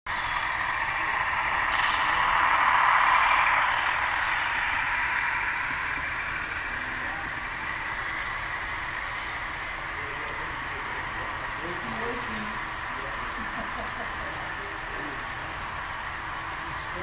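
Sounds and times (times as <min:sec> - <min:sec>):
model train whirring on rails: 0:00.1 - 0:17.0.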